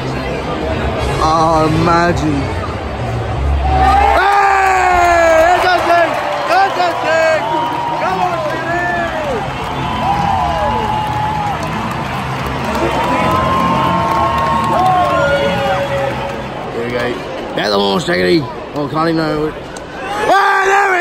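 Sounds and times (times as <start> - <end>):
stadium crowd cheering and shouting: 0.0 - 21.0.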